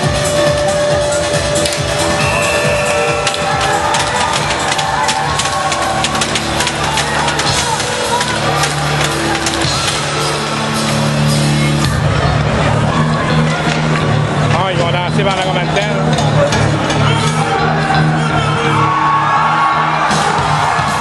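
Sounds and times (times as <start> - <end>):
loud music with steady beat: 0.0 - 21.0.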